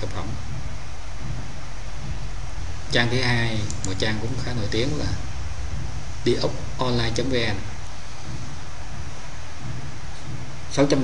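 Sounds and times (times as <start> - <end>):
low rumble: 0.0 - 10.8
steady hiss: 0.0 - 11.0.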